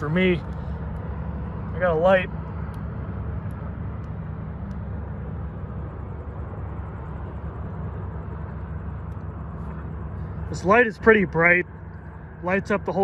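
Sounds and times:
wind and road noise: 0:00.0 - 0:13.0.

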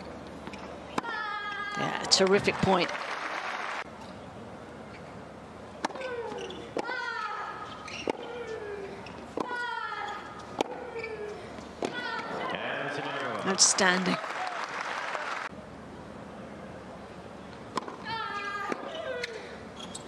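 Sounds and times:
racket striking tennis ball: 0:10.6 - 0:10.9
crowd noise: 0:12.0 - 0:15.6.

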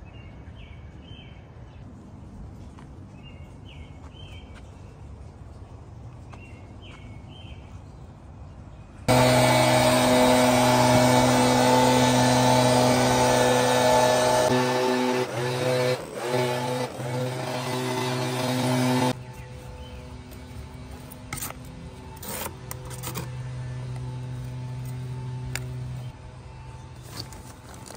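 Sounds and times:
leaf blower engine running: 0:09.1 - 0:27.9.

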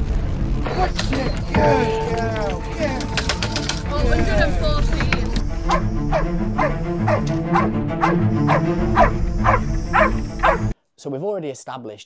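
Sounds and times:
dog barking: 0:05.7 - 0:10.7.

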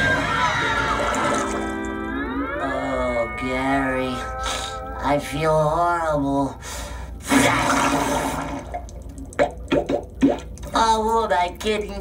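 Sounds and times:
cartoon watery rush: 0:07.3 - 0:10.6.

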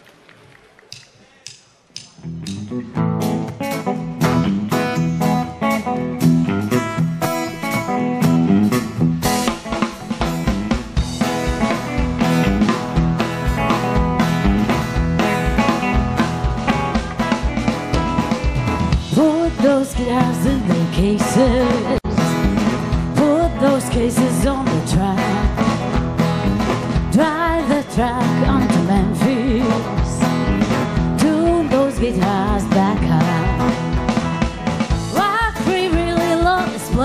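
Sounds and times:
country-rock band playing: 0:02.0 - 0:37.0
person singing: 0:19.1 - 0:25.7, 0:27.1 - 0:30.3, 0:31.2 - 0:33.8, 0:35.1 - 0:37.0.

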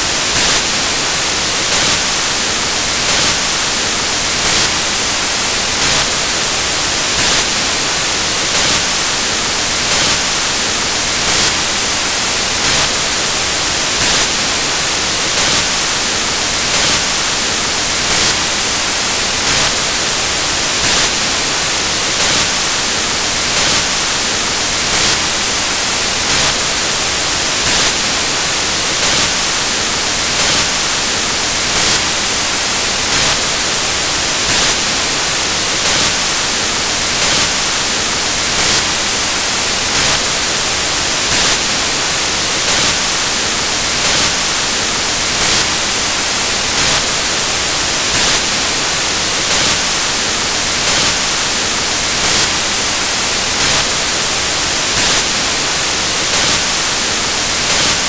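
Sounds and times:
electronic static hiss: 0:00.0 - 0:58.0
louder static pulse: 0:00.0 - 0:58.0.

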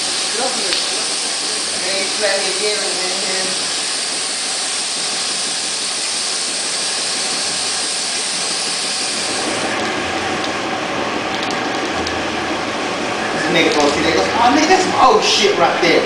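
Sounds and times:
paint spray gun hissing: 0:00.0 - 0:10.0.

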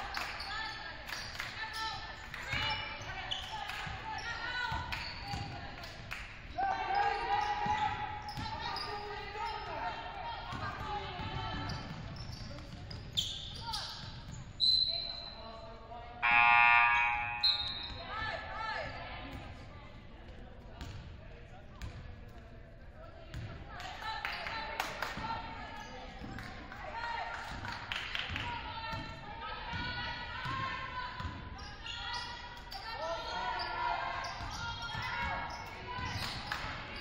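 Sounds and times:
loud call: 0:16.2 - 0:17.8
players calling out: 0:16.2 - 0:18.0.

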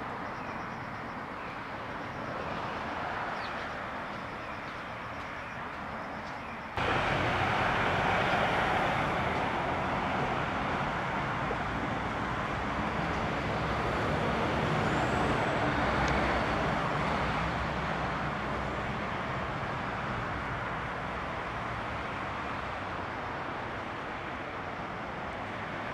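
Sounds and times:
road traffic rushing past: 0:00.0 - 0:25.9.

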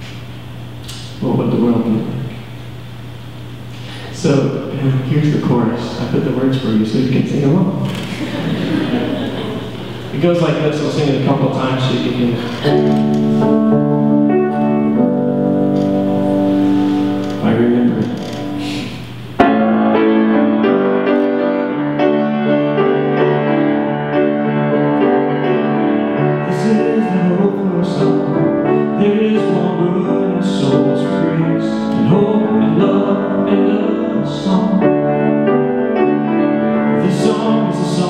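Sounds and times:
piano playing slow chords: 0:00.0 - 0:38.0.

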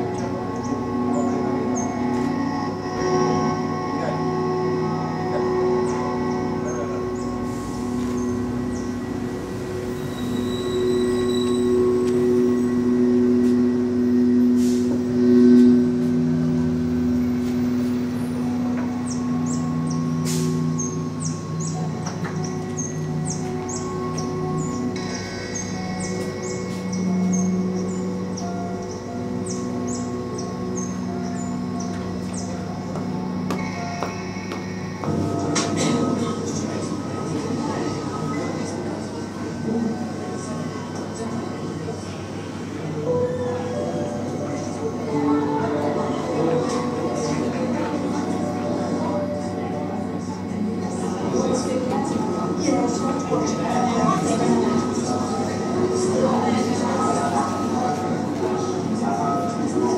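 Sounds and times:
sustained low electronic tones: 0:00.0 - 0:59.9.

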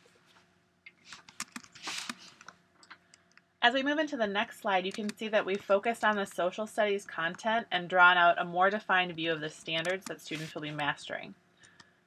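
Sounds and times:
computer keyboard clicks: 0:01.3 - 0:03.4.

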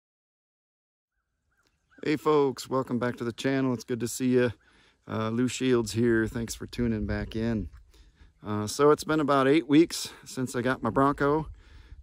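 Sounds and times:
faint outdoor background: 0:01.1 - 0:12.0.

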